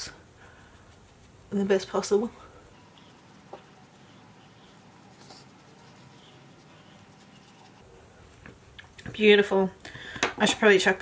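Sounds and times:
brush brushing on skin: 0.4s - 8.4s.

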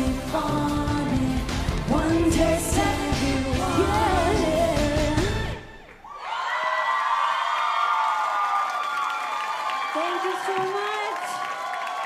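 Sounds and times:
pop song with women singing: 0.0s - 5.8s
audience cheering and whooping: 3.6s - 12.0s.

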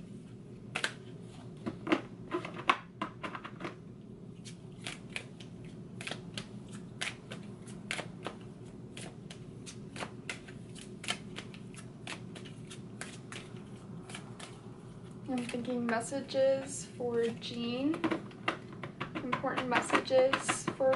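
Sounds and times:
cards being shuffled by hand: 4.4s - 16.0s.

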